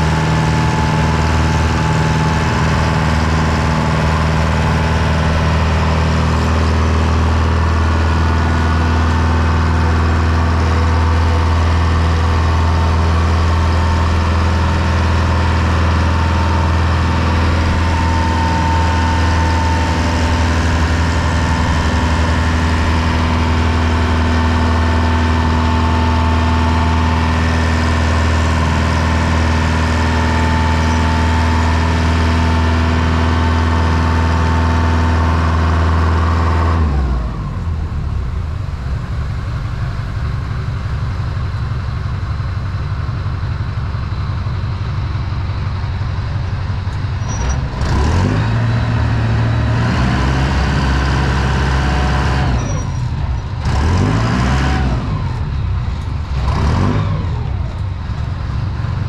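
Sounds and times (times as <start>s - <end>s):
boat engine running: 0.0s - 59.0s.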